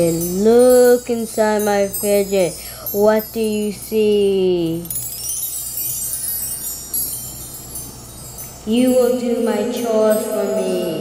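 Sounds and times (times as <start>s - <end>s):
twinkling high chime: 0.0s - 11.0s.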